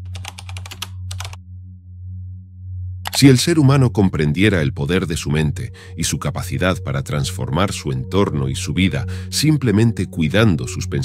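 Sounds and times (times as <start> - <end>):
keystroke clicks: 0.0 - 1.4
low steady drone: 0.9 - 11.0.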